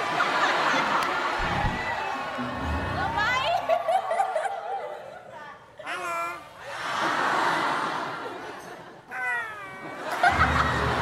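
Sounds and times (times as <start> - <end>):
audience laughter: 0.0 - 1.6, 2.4 - 5.7, 6.6 - 9.1, 9.8 - 11.0.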